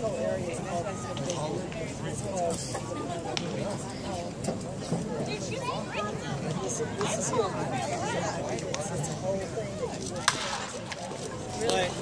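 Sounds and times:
crowd murmuring: 0:00.0 - 0:12.0
baseball bat hitting ball: 0:10.2 - 0:10.7.

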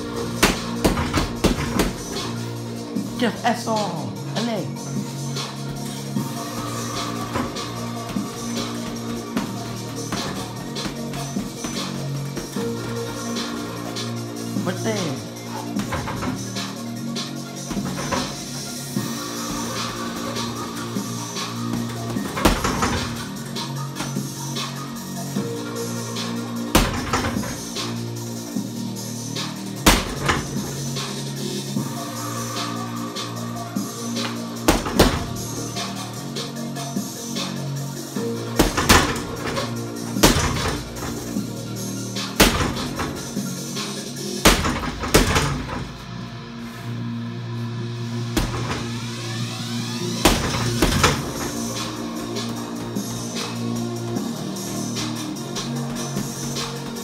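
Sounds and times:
music: 0:00.0 - 0:57.0
punches thudding on heavy bag: 0:00.4 - 0:02.2, 0:17.7 - 0:18.5, 0:21.7 - 0:23.3, 0:26.8 - 0:27.6, 0:29.9 - 0:30.8, 0:34.2 - 0:35.5, 0:38.6 - 0:41.4, 0:42.4 - 0:43.4, 0:44.4 - 0:46.0, 0:48.4 - 0:49.0, 0:50.2 - 0:53.1.

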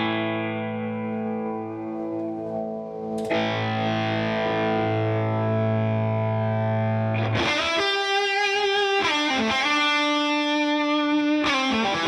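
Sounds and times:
electric guitar chord ringing: 0:00.0 - 0:12.0
electric guitar notes: 0:00.0 - 0:12.0.

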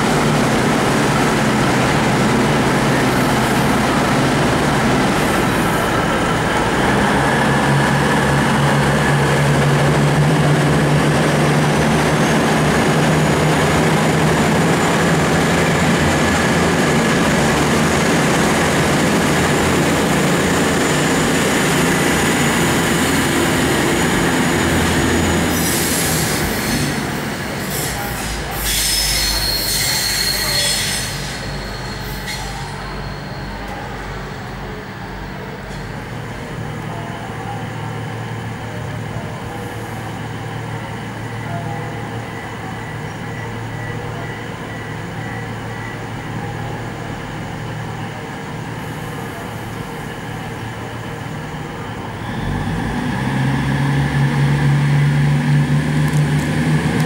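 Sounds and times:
diesel train engine droning: 0:00.0 - 0:57.0
high wheel squeal: 0:25.1 - 0:34.8.

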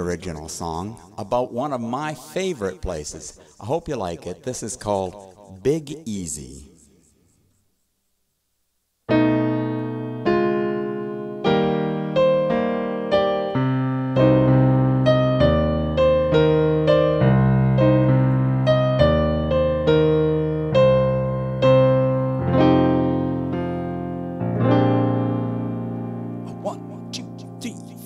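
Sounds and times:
piano chords: 0:09.1 - 0:28.0.

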